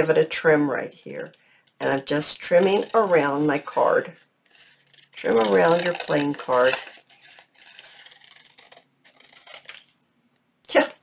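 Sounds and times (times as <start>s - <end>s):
scissors cutting paper: 1.2s - 3.9s, 4.6s - 9.9s.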